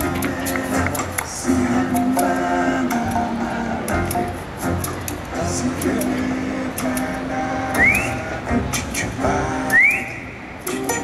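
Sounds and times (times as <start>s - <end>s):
drums: 0.0s - 7.1s
jazz band playing: 0.0s - 9.6s, 10.6s - 11.0s
guitar: 0.0s - 11.0s.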